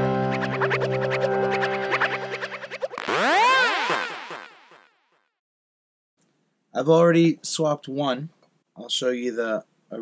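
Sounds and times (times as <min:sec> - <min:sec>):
synthesizer swooping tones: 0:02.7 - 0:05.0.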